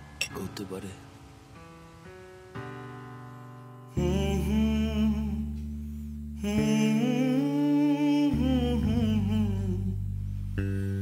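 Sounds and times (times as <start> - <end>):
sustained chords: 0.0 - 11.0
person humming melody: 3.9 - 11.0.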